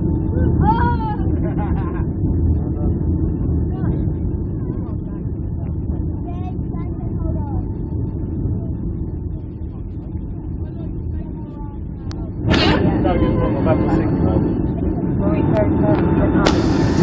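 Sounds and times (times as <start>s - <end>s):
airliner cabin roar: 0.0s - 17.0s
faint passenger voices: 0.0s - 17.0s.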